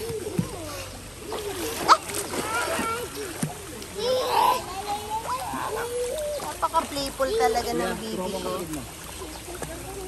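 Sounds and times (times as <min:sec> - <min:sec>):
young children's voices: 0:00.0 - 0:08.6, 0:09.2 - 0:10.0
water splashing in a pool: 0:00.0 - 0:10.0.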